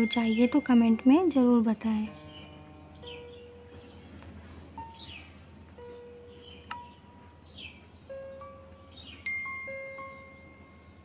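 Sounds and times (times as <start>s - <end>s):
chime-like background music: 0.0s - 2.4s, 9.2s - 11.0s.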